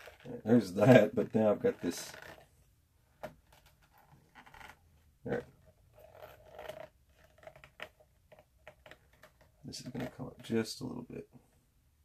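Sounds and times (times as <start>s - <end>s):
leather scraping and rustling: 1.6s - 2.5s, 3.3s - 10.2s.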